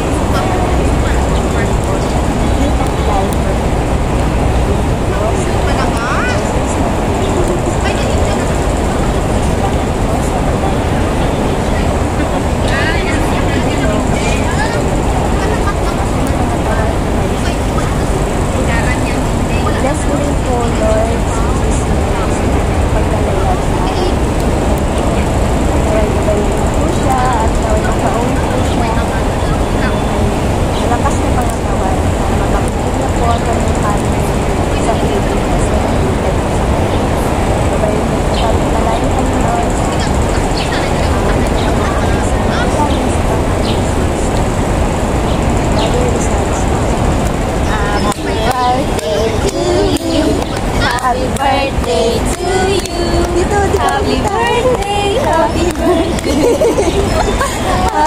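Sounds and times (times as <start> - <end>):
loud outdoor background noise: 0.0 - 58.0
people talking faintly: 0.0 - 58.0.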